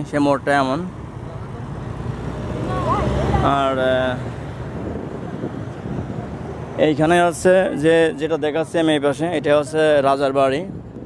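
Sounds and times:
road traffic: 0.0s - 11.0s
car passing close by: 1.9s - 6.8s.

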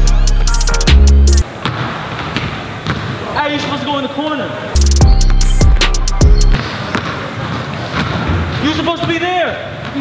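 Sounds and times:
background music with deep bass: 0.0s - 1.4s, 4.8s - 6.6s.

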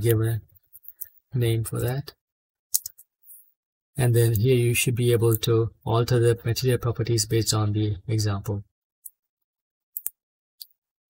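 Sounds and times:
computer mouse clicks: 2.8s - 3.1s, 10.0s - 10.8s.

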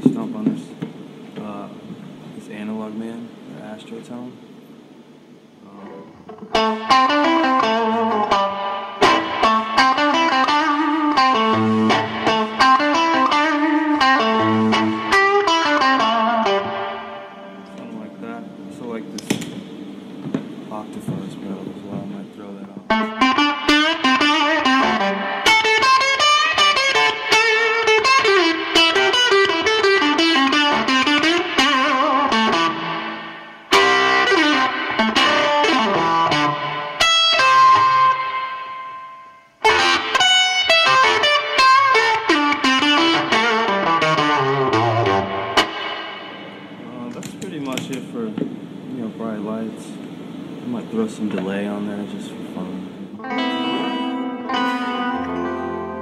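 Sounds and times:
electric guitar playing: 5.8s - 20.7s, 21.5s - 47.9s, 53.1s - 56.0s.

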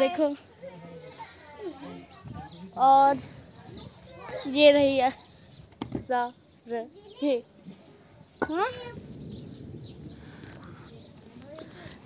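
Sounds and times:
voices talking faintly: 0.0s - 12.0s.

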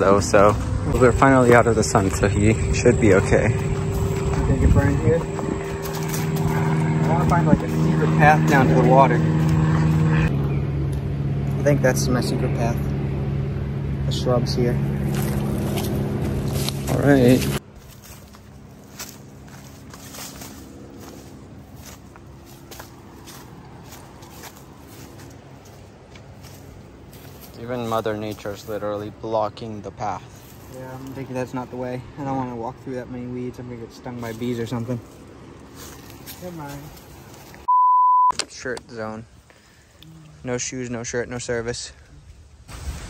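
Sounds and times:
engine droning low hum: 0.0s - 37.7s
footsteps crunching on dry leaves: 0.4s - 10.4s, 14.8s - 29.3s, 30.0s - 31.7s, 34.0s - 37.7s.

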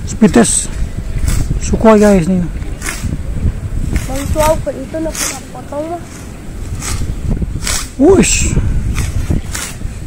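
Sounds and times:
wind rumbling on microphone: 0.0s - 10.0s
people talking: 1.6s - 3.2s, 4.0s - 6.1s, 7.9s - 8.7s
short hissing swishes: 3.8s - 10.0s.

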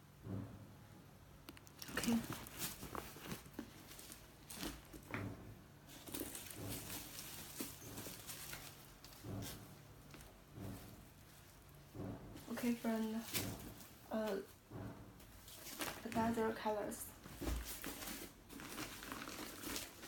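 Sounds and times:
handbag and tissue paper rustling: 1.8s - 11.8s, 12.4s - 14.5s, 15.3s - 20.0s.

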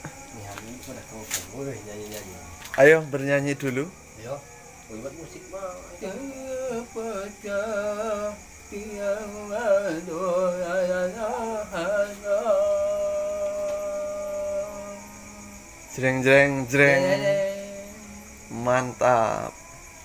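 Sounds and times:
man singing unaccompanied: 0.0s - 20.0s.

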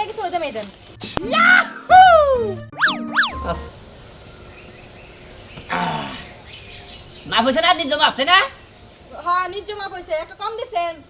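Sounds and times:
falling whistle-like glide: 2.0s - 3.6s
cartoon boings: 2.7s - 3.8s.

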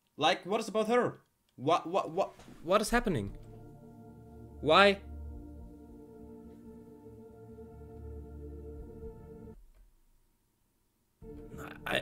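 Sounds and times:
man's voice: 1.8s - 3.4s, 4.6s - 5.1s
soft background music: 2.6s - 9.6s, 11.2s - 12.0s.

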